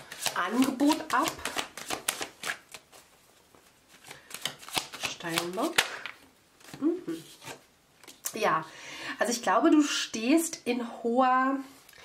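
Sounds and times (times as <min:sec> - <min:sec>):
cards being shuffled: 0:00.0 - 0:08.2.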